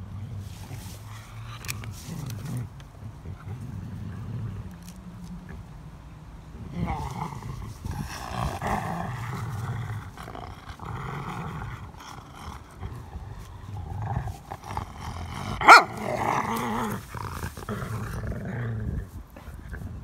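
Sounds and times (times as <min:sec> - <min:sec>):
dog growling: 0:00.0 - 0:05.6, 0:06.6 - 0:20.0.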